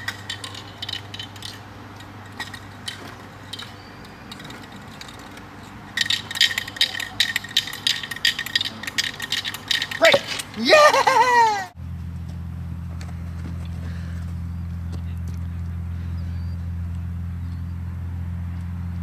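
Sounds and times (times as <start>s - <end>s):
metal rattle clicking: 0.0s - 10.7s.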